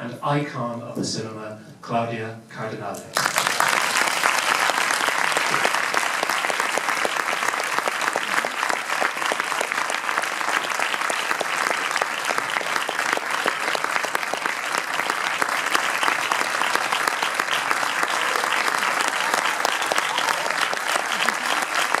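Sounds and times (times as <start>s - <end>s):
audience applauding: 3.0s - 22.0s.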